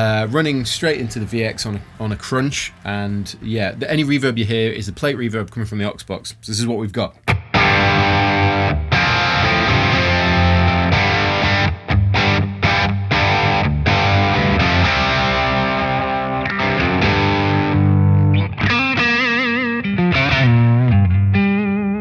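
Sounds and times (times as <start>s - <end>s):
electric guitar with reverb: 7.3s - 22.0s.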